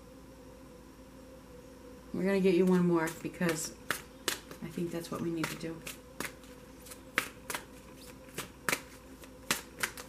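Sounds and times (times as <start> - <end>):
cards being shuffled by hand: 2.6 - 10.0.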